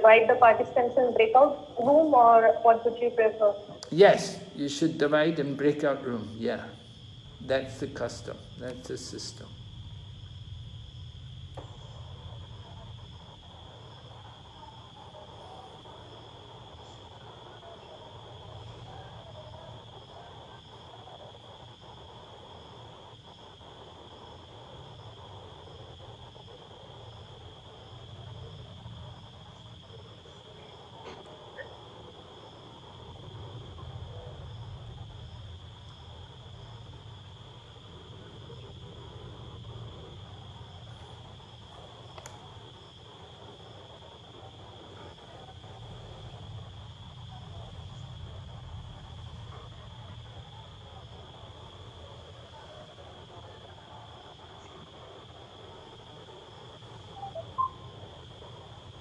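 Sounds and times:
crickets chirring: 0:00.0 - 0:59.0.

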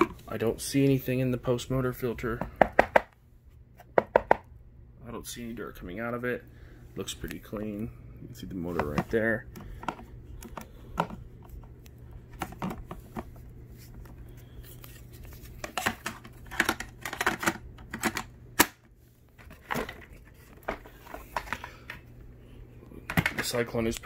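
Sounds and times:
plastic vacuum parts rattling: 0:15.3 - 0:18.3, 0:19.4 - 0:22.0, 0:23.0 - 0:23.7.

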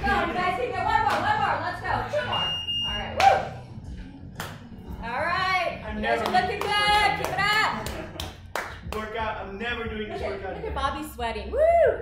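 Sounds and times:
high electronic timer beep: 0:02.2 - 0:03.2.

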